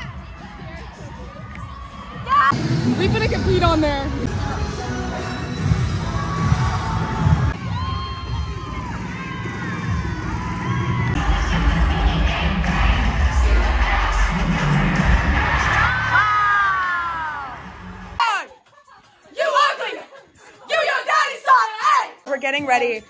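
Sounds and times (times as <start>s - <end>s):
crowd cheering and screaming: 5.2s - 18.2s
music with heavy bass: 8.4s - 16.5s.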